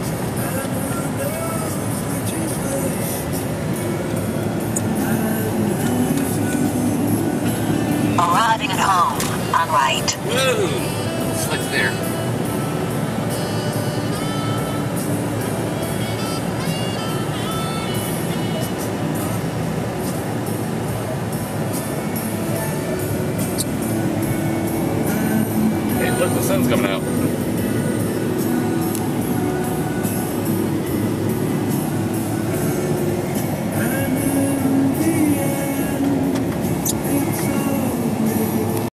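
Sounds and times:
car radio music: 0.0s - 38.9s
car running noise: 0.0s - 38.9s.

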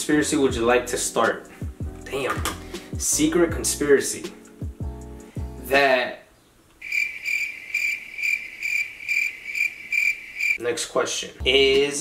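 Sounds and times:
cricket chirping: 6.8s - 10.6s.

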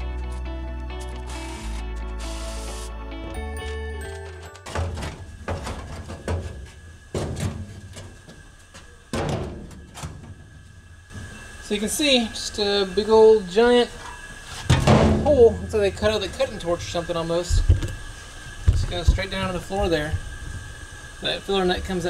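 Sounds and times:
background music: 0.0s - 4.8s.

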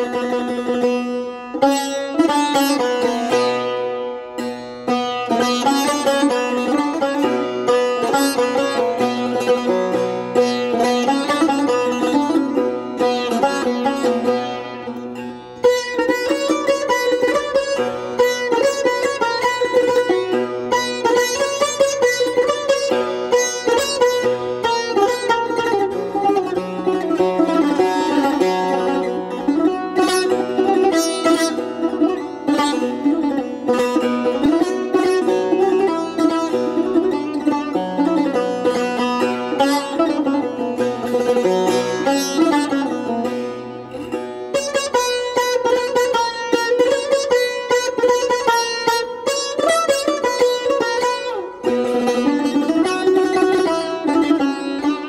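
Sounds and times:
plucked string melody: 0.0s - 55.0s.

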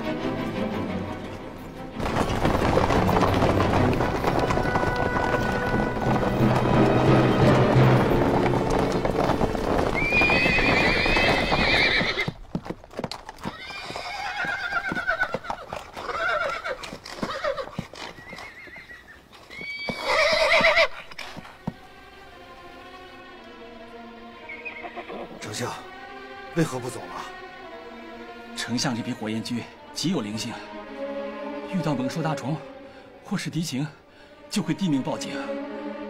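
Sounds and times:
music: 0.0s - 11.7s, 20.8s - 36.0s
horse hooves clattering: 0.0s - 25.8s
hooves stamping: 0.0s - 28.7s
horses whinnying: 2.0s - 12.4s, 13.3s - 21.6s, 24.4s - 25.4s.

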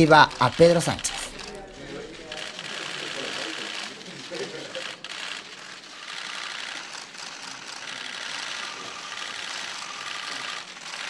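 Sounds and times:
camera shutters clicking: 0.0s - 11.0s.

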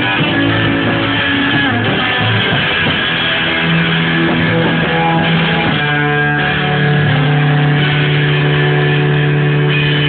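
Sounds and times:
electric guitar: 0.0s - 10.0s
rock band instrumental: 0.0s - 10.0s.

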